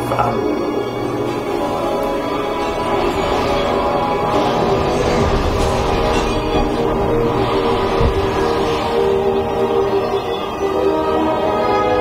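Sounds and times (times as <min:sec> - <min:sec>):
orchestral music chords: 0:00.0 - 0:12.0
low boom: 0:03.3 - 0:10.1.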